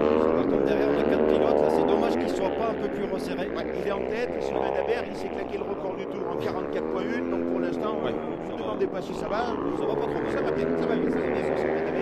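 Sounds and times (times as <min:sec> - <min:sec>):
motorcycle engines revving: 0:00.0 - 0:12.0.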